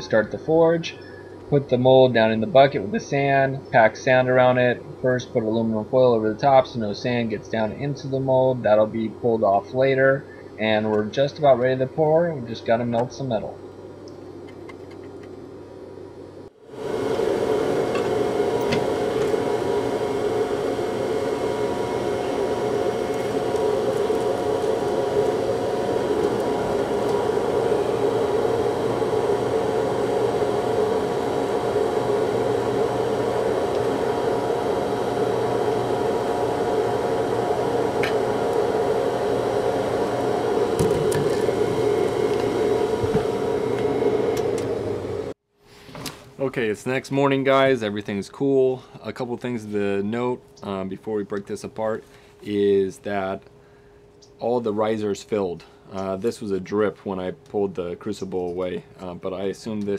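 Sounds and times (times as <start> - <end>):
forge rushing with low hum: 15.4 - 45.4.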